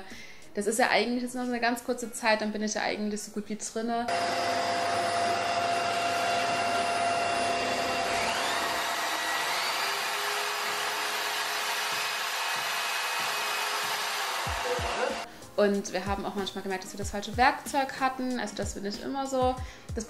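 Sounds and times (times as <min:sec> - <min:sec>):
power drill drilling into ceiling: 0:04.1 - 0:15.3
vacuum cleaner running: 0:04.1 - 0:15.3
rising tone: 0:12.1 - 0:15.3.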